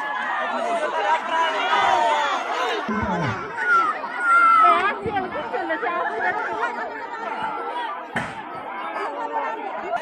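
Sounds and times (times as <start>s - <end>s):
loud high shout: 0.0s - 5.0s
crowd chattering and calling out: 0.0s - 10.0s.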